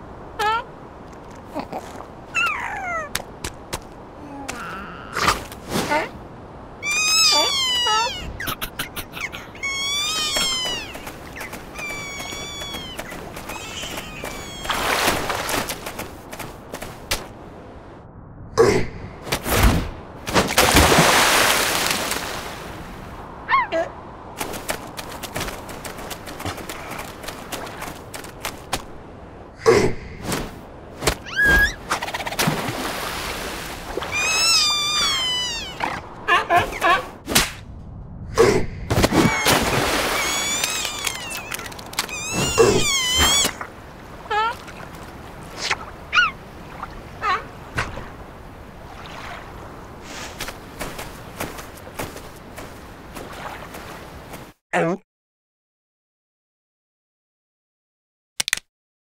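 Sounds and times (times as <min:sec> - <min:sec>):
cartoon squeaky meow-like calls: 0:06.8 - 0:08.5, 0:09.2 - 0:11.0, 0:11.7 - 0:14.8, 0:31.2 - 0:31.8, 0:34.1 - 0:35.9, 0:39.3 - 0:43.6.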